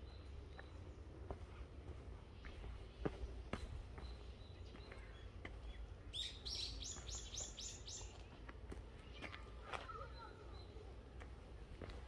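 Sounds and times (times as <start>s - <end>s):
small songbird singing: 2.4s - 8.4s.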